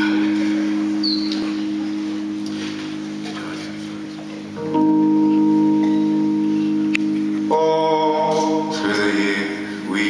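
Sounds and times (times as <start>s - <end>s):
sustained keyboard chord: 0.0s - 10.0s.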